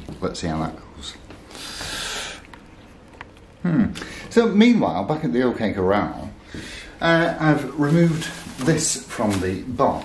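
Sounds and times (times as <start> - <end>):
cling film rustling: 7.3 - 10.0.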